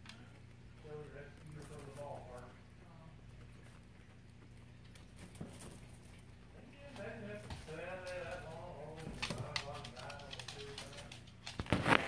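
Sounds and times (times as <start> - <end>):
guinea pig calling: 0.0 - 12.0.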